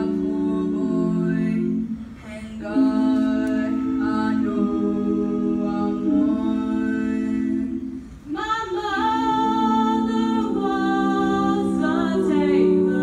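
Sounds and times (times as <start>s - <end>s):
girls singing a cappella: 0.0s - 13.0s.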